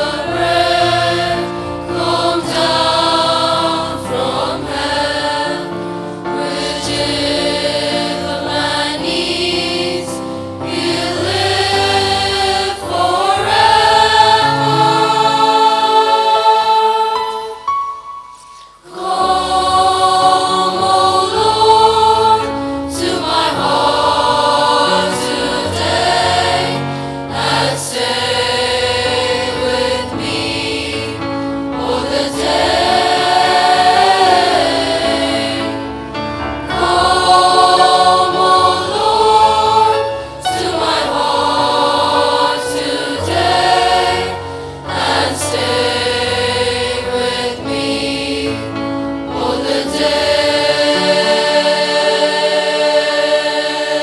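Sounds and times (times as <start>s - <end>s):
choir singing a hymn: 0.0s - 17.8s, 18.5s - 54.0s
sustained musical accompaniment: 0.0s - 54.0s.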